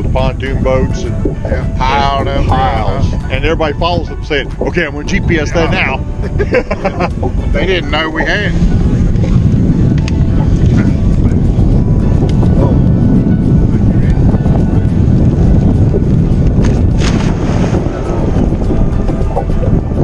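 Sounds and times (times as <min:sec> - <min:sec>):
wind buffeting microphone: 0:00.0 - 0:20.0
object splashing into water: 0:16.6 - 0:17.8.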